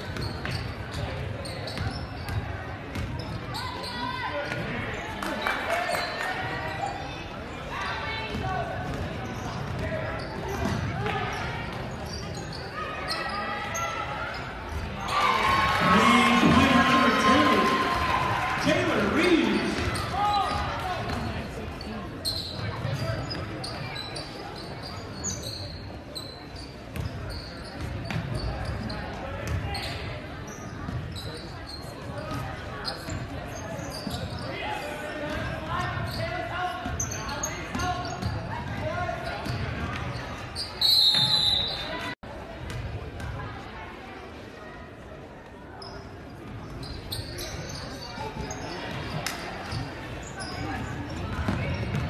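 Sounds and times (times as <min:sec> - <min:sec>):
sneaker squeaks: 0:00.0 - 0:07.4, 0:08.1 - 0:17.8, 0:18.6 - 0:43.4, 0:45.7 - 0:52.0
crowd chatter: 0:00.0 - 0:52.0
referee's whistle: 0:40.6 - 0:42.1.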